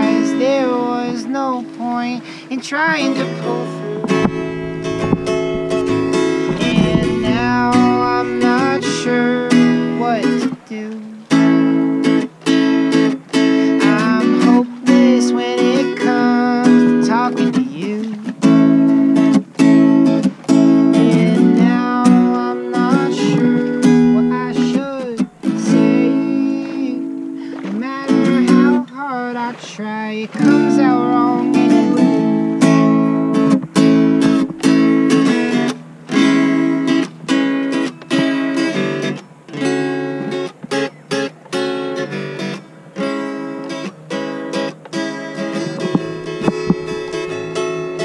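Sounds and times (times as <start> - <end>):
acoustic guitar strumming chords: 0.0 - 48.0.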